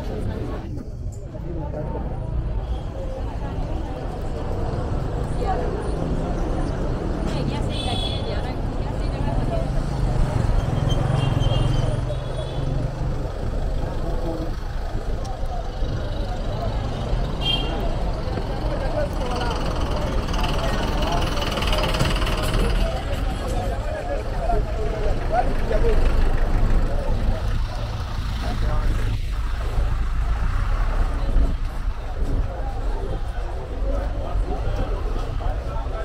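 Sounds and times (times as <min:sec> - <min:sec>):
indistinct voices of passers-by: 0:00.0 - 0:36.0
vehicle engine rumble: 0:00.0 - 0:36.0.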